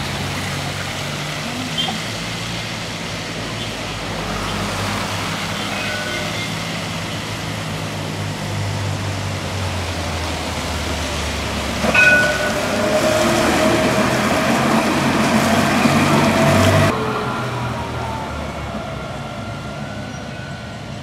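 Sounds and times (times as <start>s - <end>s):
wet traffic hiss: 0.0s - 11.9s
tram low hum: 0.0s - 21.0s
tram motor whine: 0.0s - 21.0s
tram bell clang: 5.3s - 7.1s, 11.8s - 17.0s.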